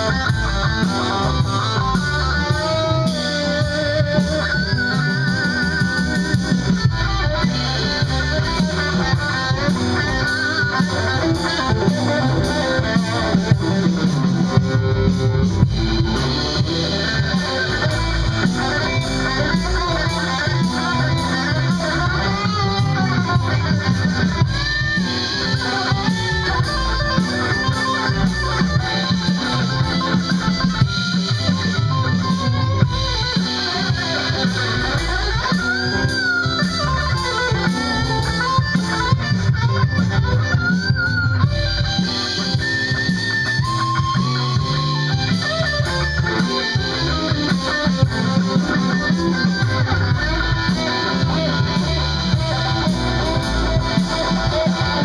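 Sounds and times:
bent guitar notes: 0.0 - 55.0
live rock band playing: 0.0 - 55.0.

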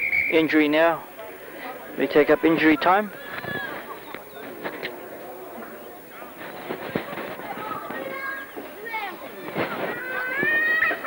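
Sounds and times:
faint outdoor voices calling: 0.0 - 11.0.

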